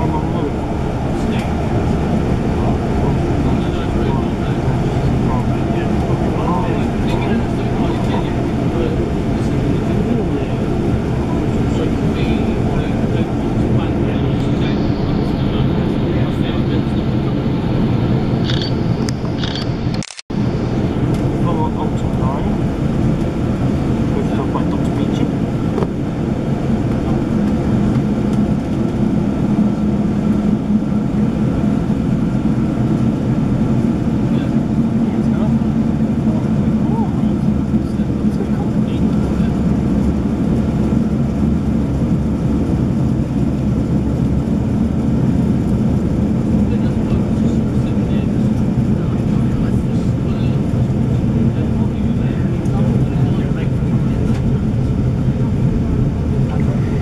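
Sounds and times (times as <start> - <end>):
train coach rumbling: 0.0 - 57.0.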